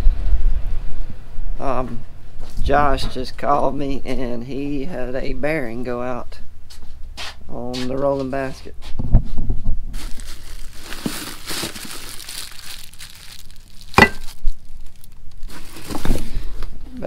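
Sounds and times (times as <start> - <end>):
cardboard packaging rustling: 9.9 - 16.6.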